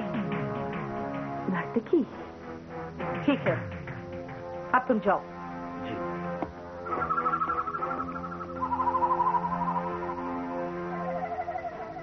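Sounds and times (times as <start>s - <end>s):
low drone: 5.9s - 12.0s
flute-like melody: 6.8s - 12.0s.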